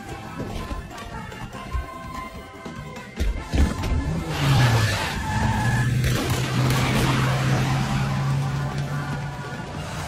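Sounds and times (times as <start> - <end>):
tyres skidding: 0.0 - 10.0.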